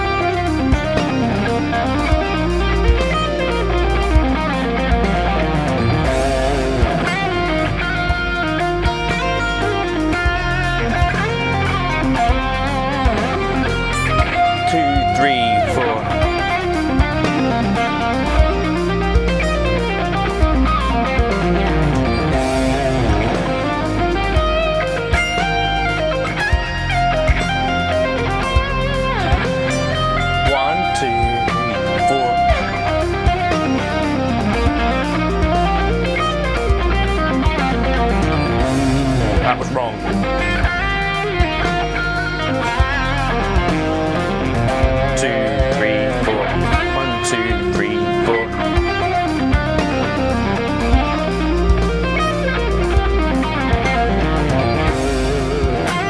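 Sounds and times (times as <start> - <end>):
backing track with bass and beat: 0.0 - 56.0
electric guitar lead line: 0.0 - 56.0.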